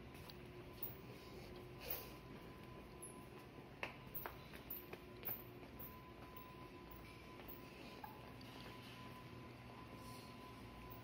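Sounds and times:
faint room hum: 0:00.0 - 0:11.0
footstep on tile floor: 0:02.2 - 0:09.0.

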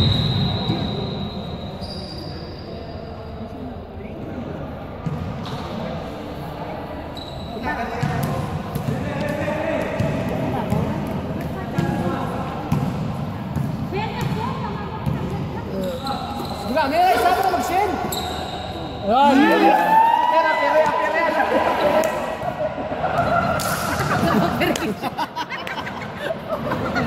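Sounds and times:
people shouting and talking: 0:00.0 - 0:27.0
basketball bouncing on court: 0:07.9 - 0:12.1, 0:12.7 - 0:16.0.

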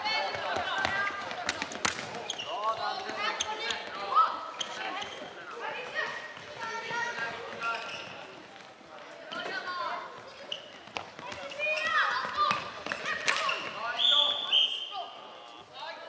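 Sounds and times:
sneakers squeaking on floor: 0:02.0 - 0:15.8.

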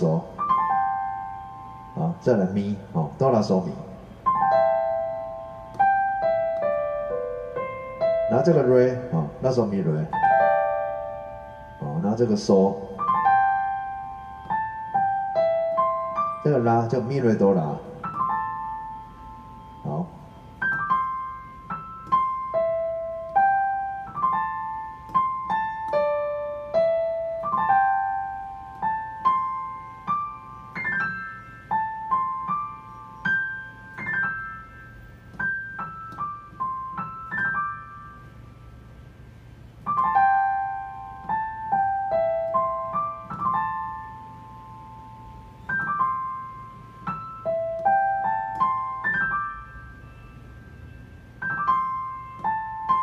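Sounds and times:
digital piano melody: 0:00.0 - 0:53.0.

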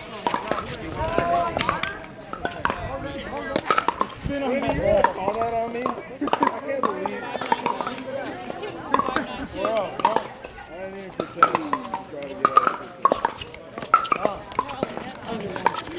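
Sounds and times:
voices talking: 0:00.0 - 0:15.9.

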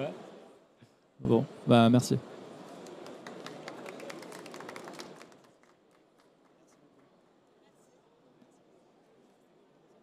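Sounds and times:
audience applauding: 0:02.8 - 0:06.8.

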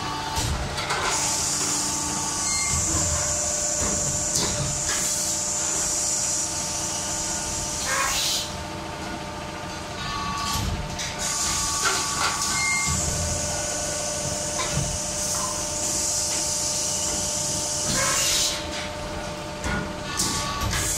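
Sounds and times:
steady machine hum: 0:00.0 - 0:20.9.

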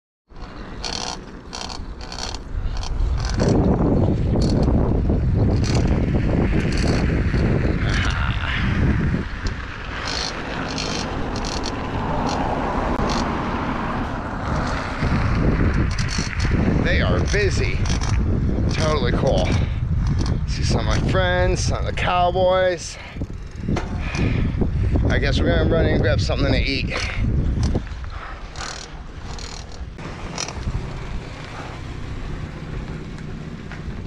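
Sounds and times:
heavy low rumble: 0:00.3 - 0:34.0
wind buffeting microphone: 0:00.3 - 0:34.0
light regular ticks: 0:00.4 - 0:03.6, 0:09.4 - 0:13.3, 0:17.2 - 0:20.4, 0:27.0 - 0:30.8.

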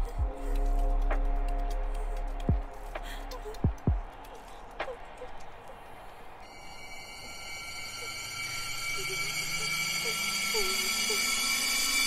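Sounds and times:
eerie soundtrack drone: 0:00.0 - 0:12.0
faint chirping glides: 0:04.9 - 0:12.0.

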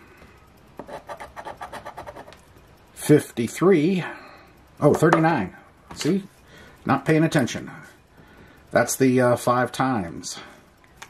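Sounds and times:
coin scratching lottery ticket: 0:00.8 - 0:02.4.

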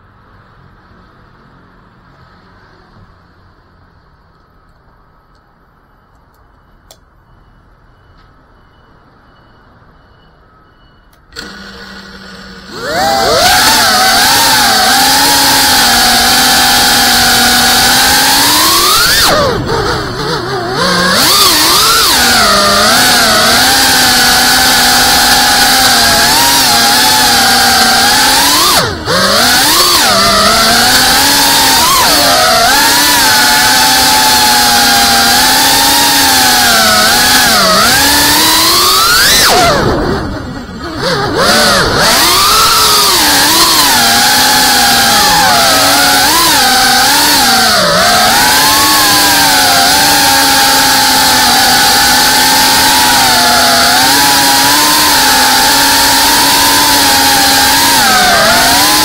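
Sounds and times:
drone motors whining: 0:11.1 - 0:59.0.

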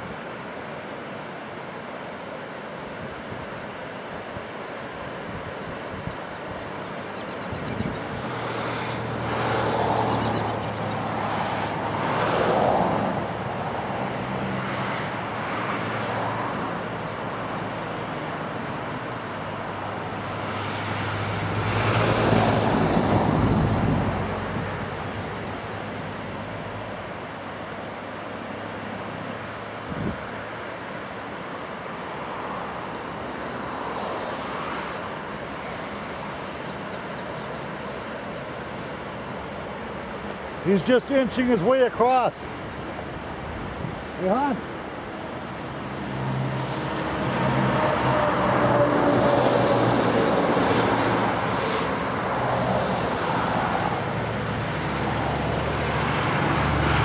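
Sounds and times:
outdoor noise: 0:00.0 - 0:57.0.

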